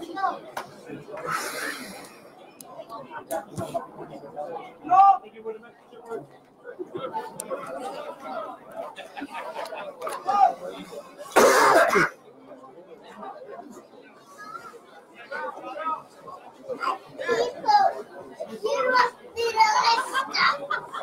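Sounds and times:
background chatter of voices: 0.0s - 21.0s
loud cough: 11.3s - 12.2s.

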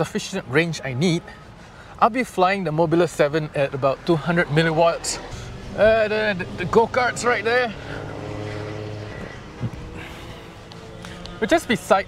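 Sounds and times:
engine running steadily: 3.7s - 12.0s.

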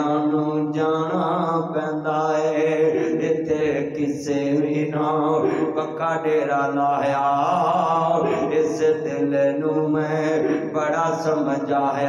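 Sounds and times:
man chanting over a microphone: 0.0s - 12.0s.

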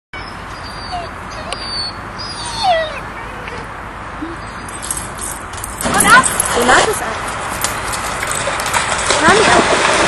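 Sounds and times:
dog whining: 0.2s - 5.3s.

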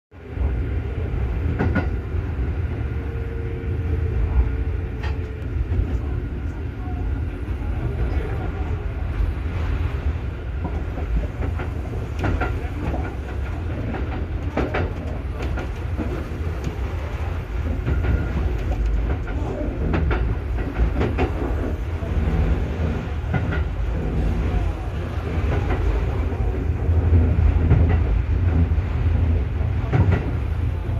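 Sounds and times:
train running rumble: 0.1s - 30.9s
wheels clacking over rail joints: 1.4s - 2.2s, 10.6s - 30.9s.

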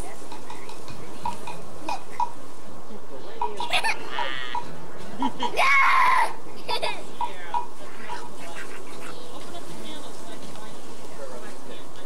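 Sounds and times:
voices: 0.0s - 12.0s.

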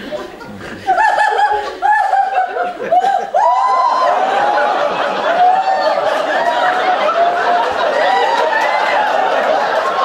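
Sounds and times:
woman laughing loudly: 0.1s - 4.4s.

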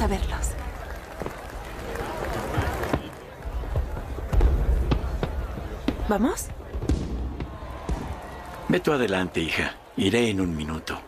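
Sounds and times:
fireworks thumps and cracks: 0.0s - 9.0s
crowd murmur: 0.0s - 11.0s.

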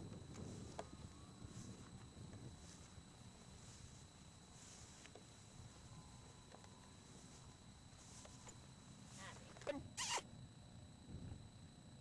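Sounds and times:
high-pitched whine: 0.0s - 10.2s.

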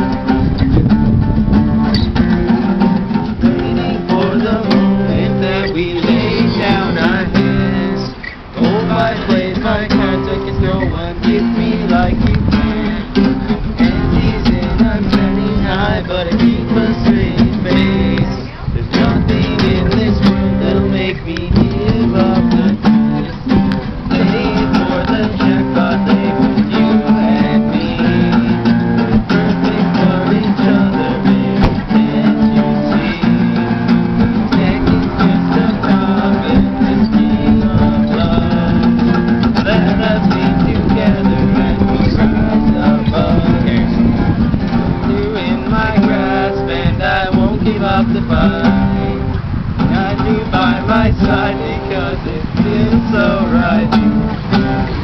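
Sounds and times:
acoustic guitars strumming chords: 0.0s - 55.0s.

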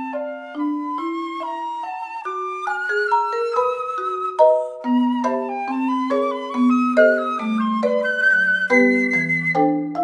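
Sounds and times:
flute melody: 0.0s - 10.0s
marimba notes: 0.0s - 10.0s.

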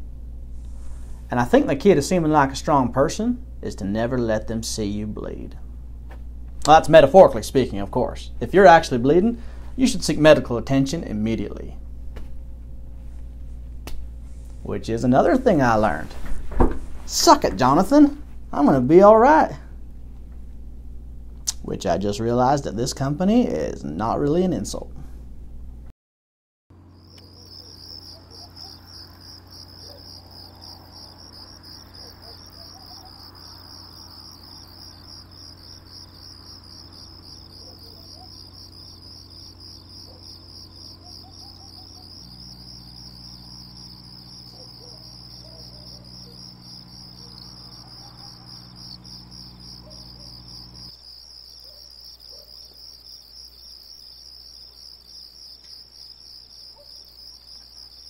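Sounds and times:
low hum: 0.0s - 22.4s, 26.8s - 50.9s
crickets chirping: 17.0s - 20.0s, 26.7s - 58.0s.

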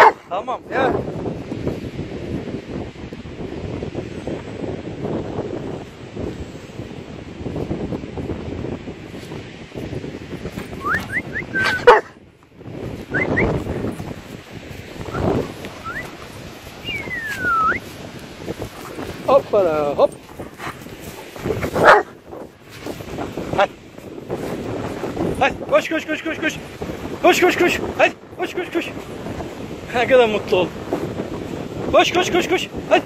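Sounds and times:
dog barking: 0.0s - 0.3s, 11.6s - 12.2s, 21.8s - 22.2s
dog whining: 10.8s - 12.1s.

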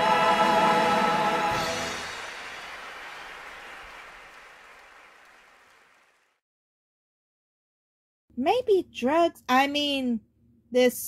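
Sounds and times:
audience applauding: 0.5s - 6.4s.

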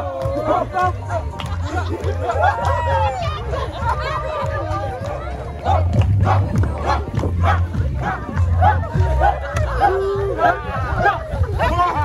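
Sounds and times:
crowd noise: 0.0s - 12.0s
dancers chanting rhythmic shouts: 0.0s - 12.0s.

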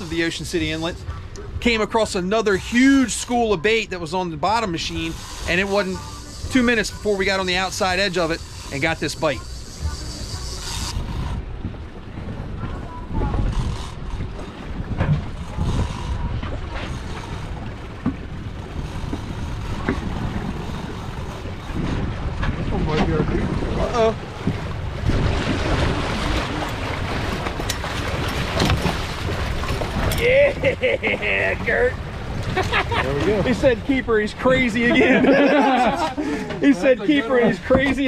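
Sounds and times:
sea water and boat noise: 0.0s - 38.0s
wind buffeting microphone: 6.0s - 38.0s.

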